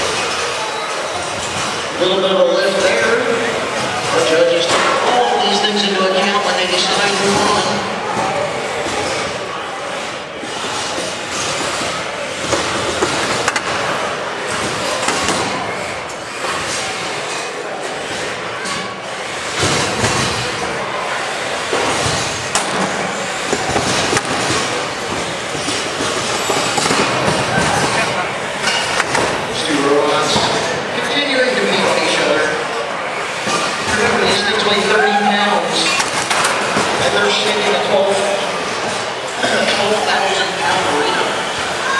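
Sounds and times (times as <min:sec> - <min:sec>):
robots clattering and scraping: 0:06.7 - 0:30.8.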